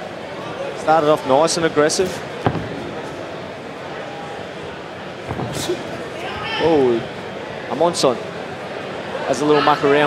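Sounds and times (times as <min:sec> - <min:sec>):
arena crowd murmur: 0:00.0 - 0:10.0
thuds: 0:02.4 - 0:03.3, 0:05.2 - 0:06.0.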